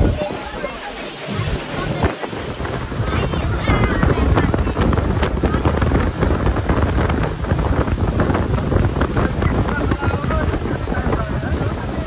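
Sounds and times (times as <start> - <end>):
motorboat running noise: 0.0 - 12.0
wind buffeting microphone: 0.0 - 12.0.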